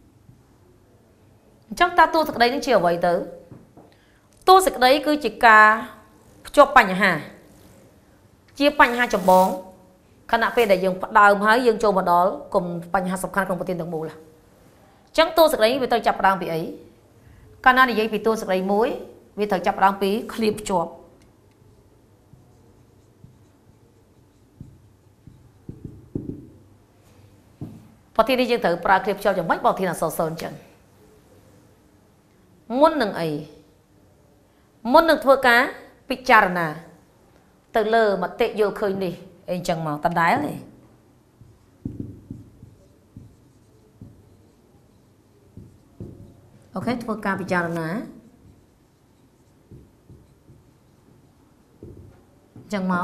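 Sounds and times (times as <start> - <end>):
marker writing on whiteboard: 19.5 - 26.7, 40.1 - 52.8
soft taps: 27.6 - 27.9, 51.8 - 52.7.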